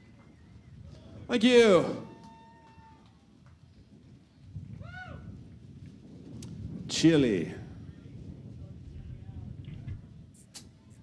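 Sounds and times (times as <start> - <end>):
whoop rising and falling: 2.0 - 3.2, 4.8 - 5.3.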